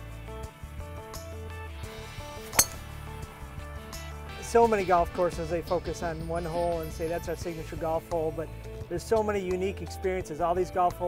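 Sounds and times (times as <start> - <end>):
background music: 0.0 - 11.0
golf club striking ball: 2.4 - 3.1.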